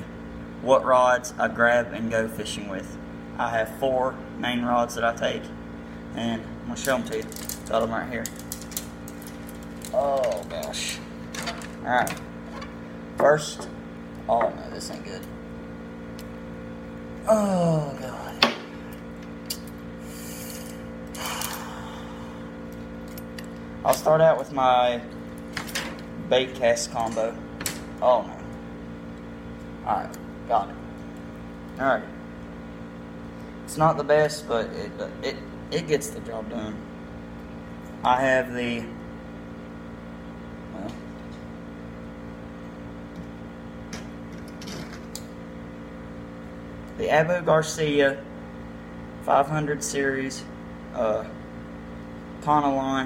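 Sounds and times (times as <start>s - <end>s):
humidifier humming: 0.0s - 53.0s.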